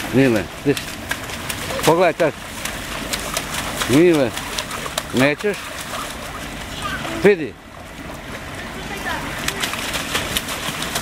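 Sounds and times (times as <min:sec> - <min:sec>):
young children calling out: 0:06.7 - 0:07.2.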